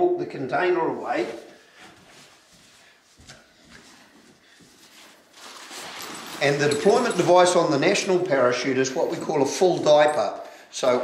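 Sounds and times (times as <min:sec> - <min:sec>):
soft footsteps: 0:01.0 - 0:08.3
fabric dragged across carpet: 0:04.8 - 0:06.5
harness container handling: 0:04.8 - 0:08.0.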